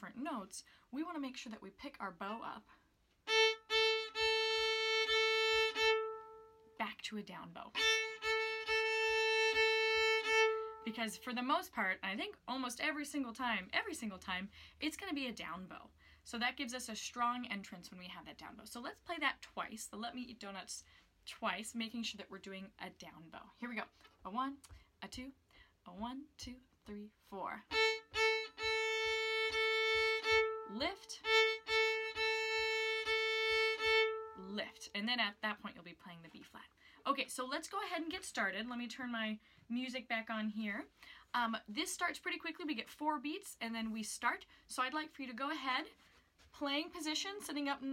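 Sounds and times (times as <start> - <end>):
violin bowing held notes: 3.3 - 6.7, 7.8 - 11.2, 27.7 - 34.6.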